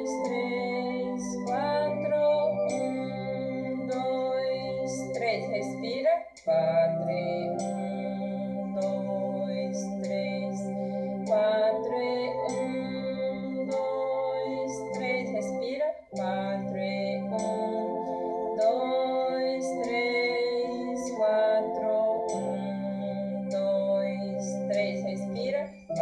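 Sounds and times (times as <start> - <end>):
metronome clicking: 0.0 - 13.0, 13.6 - 22.8, 23.5 - 26.0
organ playing hymn chords: 0.0 - 26.0.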